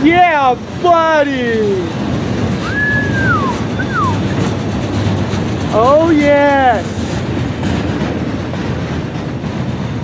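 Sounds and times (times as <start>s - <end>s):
train wheels rumbling on rail: 0.0s - 10.0s
high wheel squeal: 2.6s - 4.6s.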